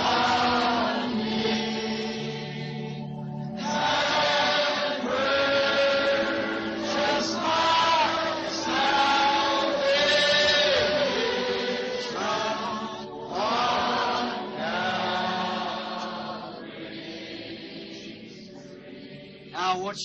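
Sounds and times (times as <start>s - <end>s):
congregation singing a hymn: 0.0s - 19.8s.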